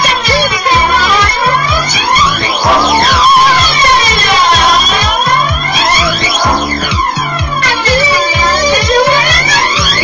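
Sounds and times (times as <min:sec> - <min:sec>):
bass line: 0:00.0 - 0:10.0
sweeping synth tones: 0:00.0 - 0:10.0
four-on-the-floor kick drum: 0:04.4 - 0:09.5.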